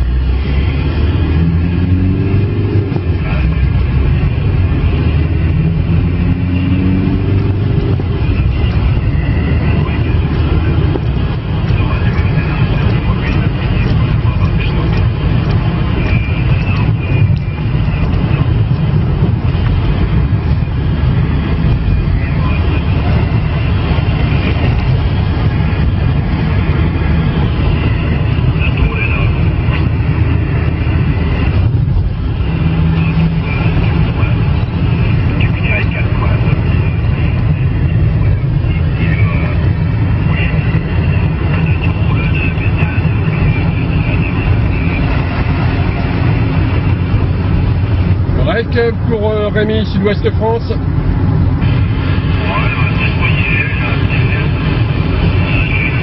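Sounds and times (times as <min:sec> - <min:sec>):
radio static hiss: 0:02.0 - 0:50.8, 0:51.4 - 0:56.0
faint distant radio voice: 0:32.8 - 0:46.2, 0:51.7 - 0:54.6, 0:55.2 - 0:56.0.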